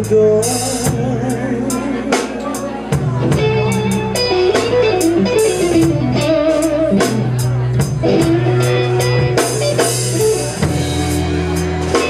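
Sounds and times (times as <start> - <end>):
bass guitar: 0.0 - 12.0
drum kit with cymbals: 0.0 - 12.0
electric guitar melody: 0.0 - 12.0.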